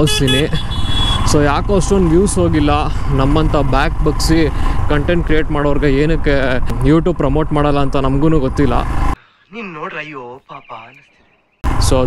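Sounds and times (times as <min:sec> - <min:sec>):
vehicle horn beeps: 0:00.0 - 0:01.3
motorcycle engine rumble: 0:00.0 - 0:09.2.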